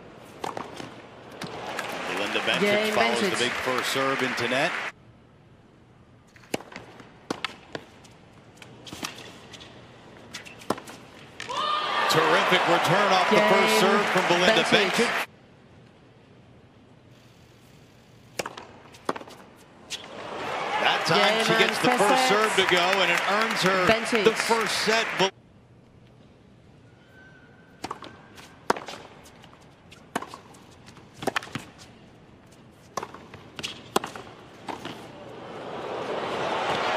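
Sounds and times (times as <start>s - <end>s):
tennis ball struck by rackets: 0.4s - 1.9s, 6.4s - 7.9s, 18.3s - 20.1s, 27.8s - 29.1s, 31.2s - 31.7s, 32.9s - 35.1s.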